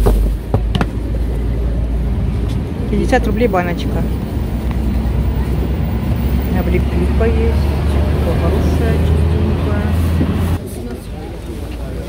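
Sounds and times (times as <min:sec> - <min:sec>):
steady low rumble: 0:00.0 - 0:10.6.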